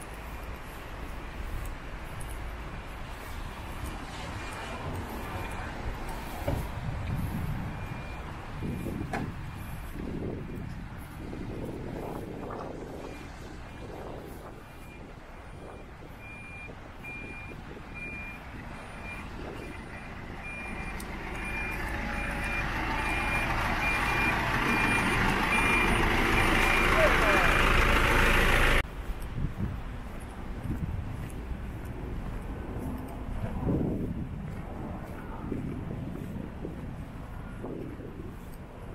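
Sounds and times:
vehicle reversing alarm beeping: 0.3s - 3.9s, 4.9s - 10.7s, 11.5s - 28.8s
rushing noise: 17.1s - 28.9s.

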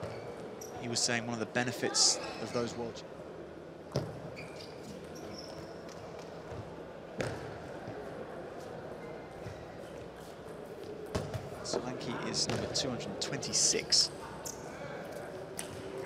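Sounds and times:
large hall background noise: 0.0s - 16.0s.

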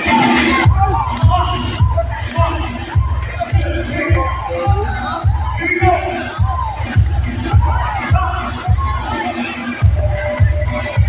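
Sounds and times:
crowd chatter and shouts: 0.0s - 11.0s
loud dance music: 0.0s - 11.0s.

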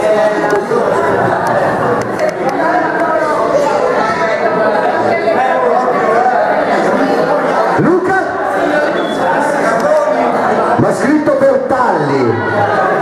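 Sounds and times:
crowd chatter in reverberant hall: 0.0s - 13.0s.

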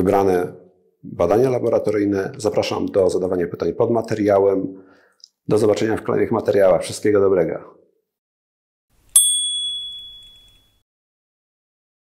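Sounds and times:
bright bell ding: 9.1s - 10.8s.

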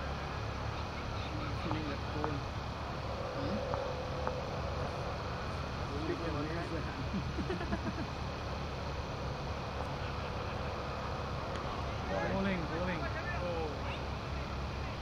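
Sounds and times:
distant players calling out: 0.6s - 7.4s.

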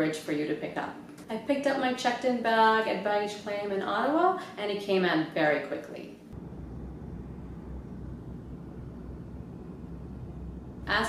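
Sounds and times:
turboprop engines droning: 6.4s - 11.0s.

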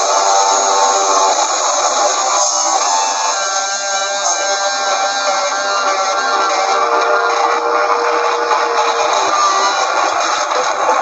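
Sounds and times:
droning electric guitars: 0.0s - 11.0s.

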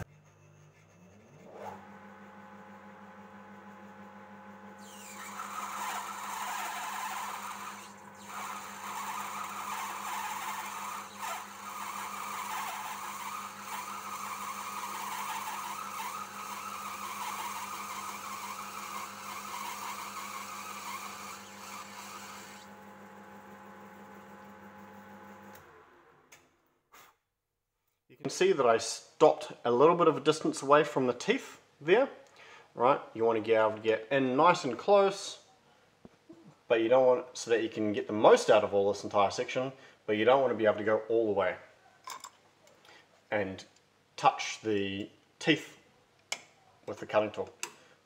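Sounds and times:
lathe motor humming: 0.0s - 26.2s
cutting tool hissing on metal: 4.8s - 22.7s.

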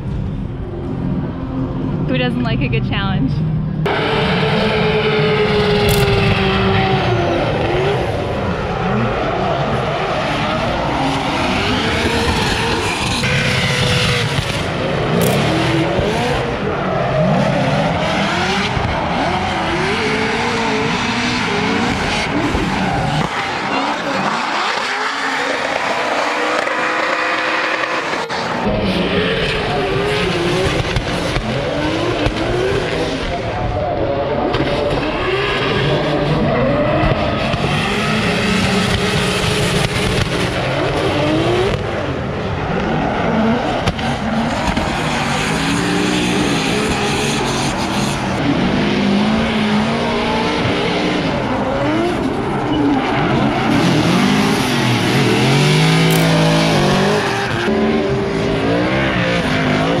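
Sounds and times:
car engines revving: 0.0s - 60.0s.

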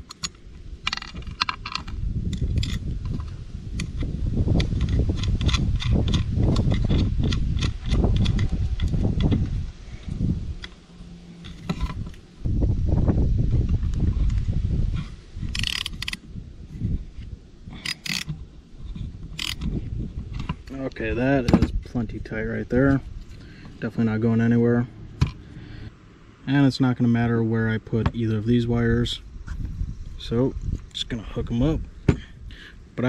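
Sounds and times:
socket ratchet clicking: 0.0s - 9.4s, 15.5s - 16.2s, 17.8s - 18.4s, 19.3s - 19.7s
loud low rumble: 1.9s - 15.6s.

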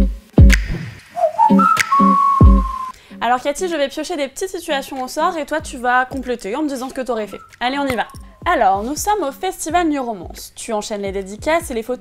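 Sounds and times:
bouncy bass line: 0.0s - 0.8s, 1.5s - 2.9s
deep kick drum: 0.0s - 0.8s, 2.4s - 2.8s
whistled melody: 0.5s - 3.0s, 7.3s - 7.6s.

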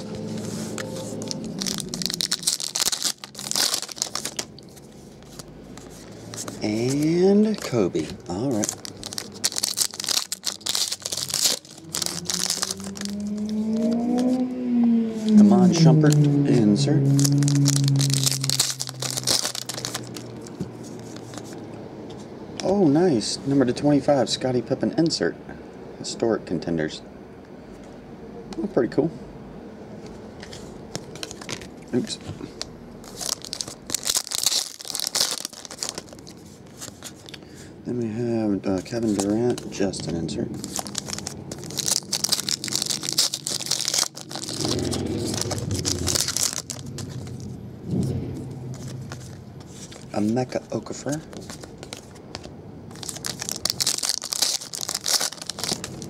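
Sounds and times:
cards rustling: 0.0s - 14.3s, 17.1s - 21.7s, 30.4s - 47.6s, 48.3s - 56.0s
foil wrapper crinkling: 0.0s - 14.3s, 17.1s - 21.6s, 33.0s - 37.4s, 38.8s - 47.6s, 48.7s - 56.0s.

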